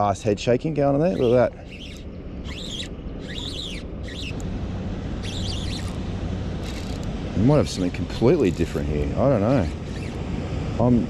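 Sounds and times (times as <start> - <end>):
steady low rumble: 0.0 - 11.0
birds chirping: 0.7 - 10.9.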